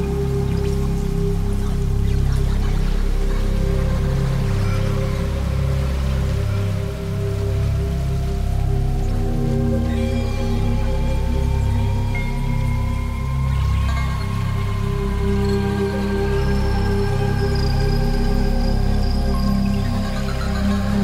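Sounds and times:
synth pad: 0:00.0 - 0:21.0.

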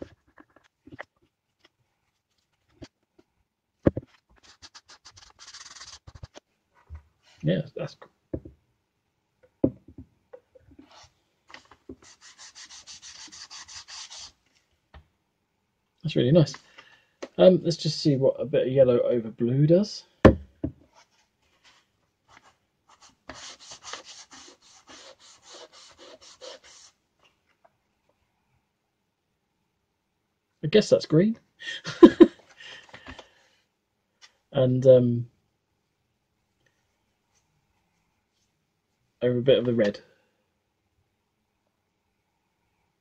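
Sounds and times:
sponge rubbing on wood: 0:12.0 - 0:14.4, 0:23.0 - 0:27.0.

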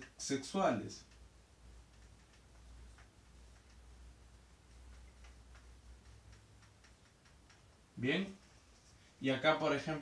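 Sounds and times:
marker writing on whiteboard: 0:01.0 - 0:07.8.

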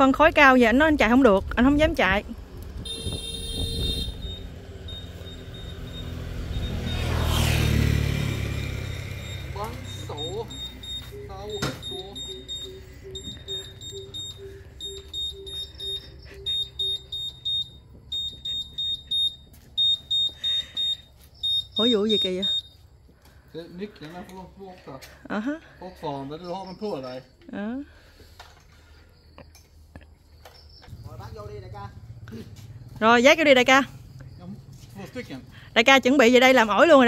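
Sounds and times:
high electronic beeps: 0:02.9 - 0:07.3, 0:08.2 - 0:22.8
vehicle passing by: 0:03.6 - 0:20.9, 0:30.9 - 0:37.0.

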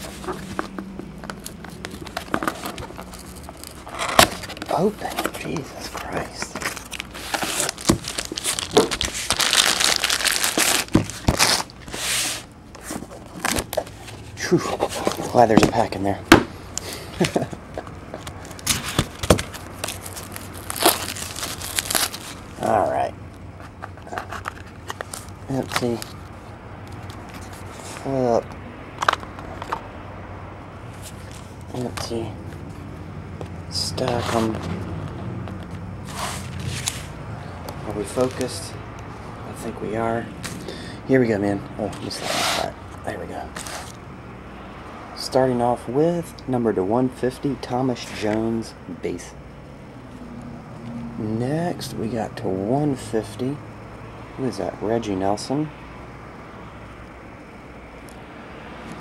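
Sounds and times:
packaging rustle: 0:00.0 - 0:16.0, 0:16.8 - 0:22.7, 0:23.6 - 0:26.3
steady low hum: 0:00.0 - 0:59.0
plastic wrapping crinkling and tearing: 0:01.4 - 0:11.9, 0:18.2 - 0:22.6.

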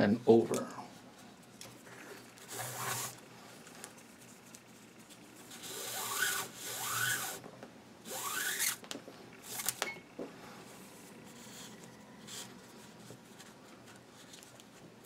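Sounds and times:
cord rasping through a weave: 0:01.8 - 0:07.4, 0:08.1 - 0:08.8.

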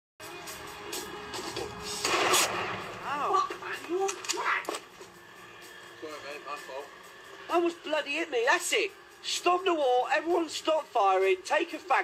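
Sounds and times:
gunshots: 0:02.0 - 0:03.1
voices: 0:03.0 - 0:12.0.

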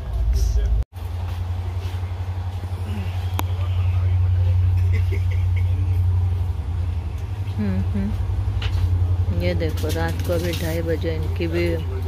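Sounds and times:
faint passenger voices: 0:00.0 - 0:12.0
train rumbling: 0:00.0 - 0:12.0.

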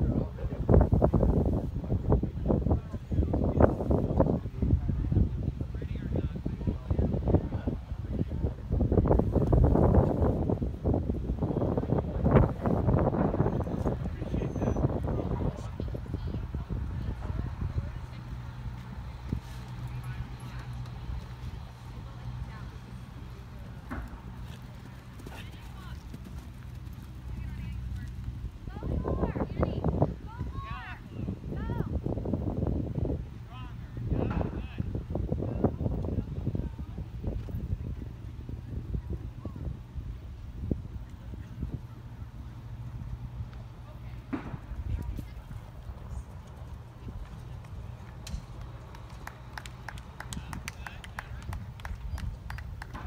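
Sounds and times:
steady low rumble: 0:00.0 - 0:53.0.

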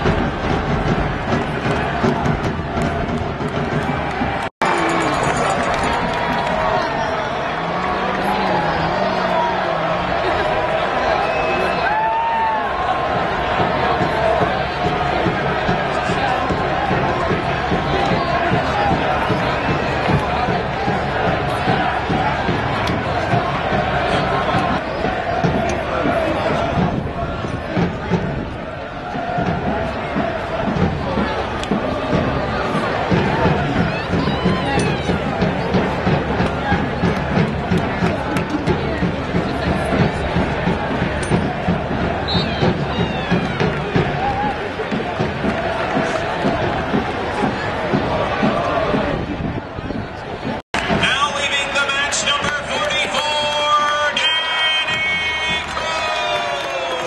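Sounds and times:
steady drum beat: 0:00.0 - 0:11.0, 0:11.8 - 0:57.0
crowd chanting: 0:00.0 - 0:57.0.

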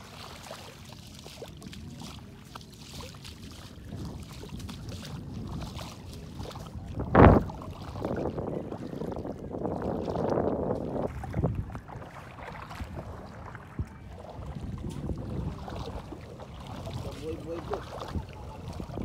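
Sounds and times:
water lapping: 0:00.0 - 0:19.0
wind buffeting microphone: 0:03.4 - 0:19.0.

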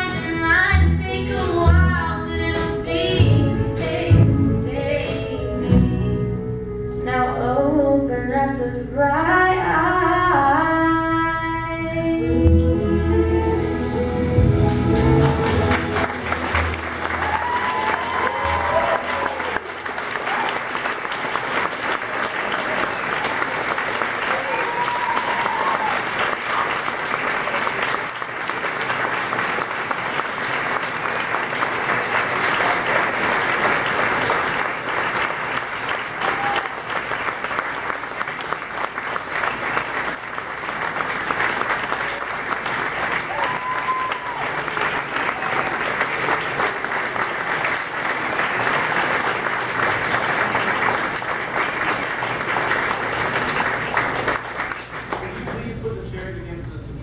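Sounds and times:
orchestra final chord: 0:12.2 - 0:17.7
large audience applauding: 0:14.7 - 0:56.3.

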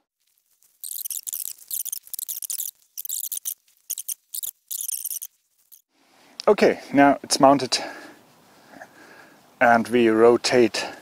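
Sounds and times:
high-pitched scratchy bursts: 0:00.8 - 0:05.8.

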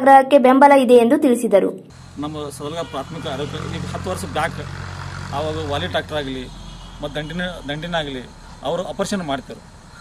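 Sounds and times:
engine idling: 0:01.9 - 0:10.0
man speaking: 0:02.2 - 0:04.7, 0:05.3 - 0:09.6.

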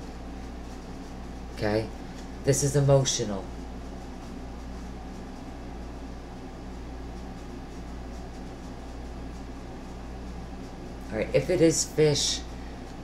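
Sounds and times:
air conditioner humming: 0:00.0 - 0:13.0.

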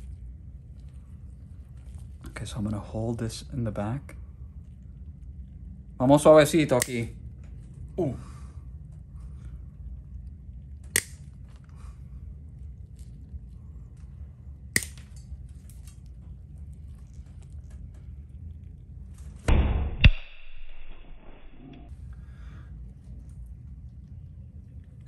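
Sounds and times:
nail nippers cracking toenail: 0:06.7 - 0:07.1, 0:10.9 - 0:11.3, 0:14.8 - 0:15.0.

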